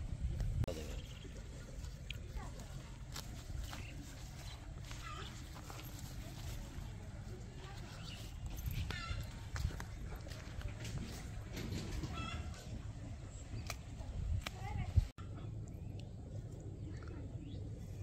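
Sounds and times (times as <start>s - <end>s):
steady low rumble: 0.0s - 11.6s, 12.5s - 18.0s.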